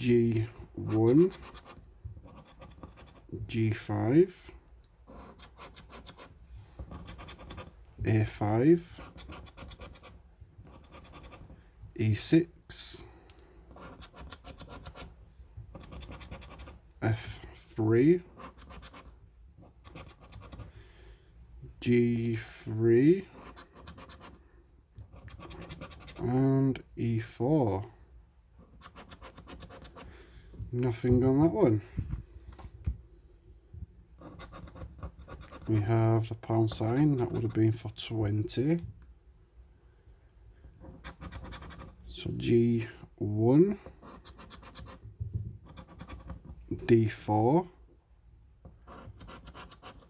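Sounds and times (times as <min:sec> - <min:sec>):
coin scratching a scratchcard: 0:00.8 - 0:03.3, 0:05.1 - 0:06.3, 0:06.9 - 0:07.7, 0:08.9 - 0:10.1, 0:10.7 - 0:11.5, 0:13.7 - 0:15.1, 0:15.7 - 0:16.8, 0:18.3 - 0:20.7, 0:23.4 - 0:24.4, 0:25.1 - 0:26.2, 0:28.7 - 0:30.1, 0:34.2 - 0:35.8, 0:40.9 - 0:42.0, 0:44.0 - 0:45.0, 0:45.6 - 0:46.5, 0:48.8 - 0:50.0
coin scraping scratch card: 0:13.7 - 0:15.1, 0:15.8 - 0:16.8, 0:25.2 - 0:26.2, 0:41.0 - 0:42.0, 0:44.0 - 0:45.0, 0:48.9 - 0:50.0.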